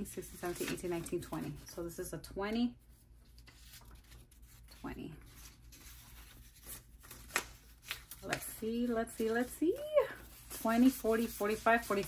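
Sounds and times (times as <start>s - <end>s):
paper bills rustling: 3.3s - 12.0s.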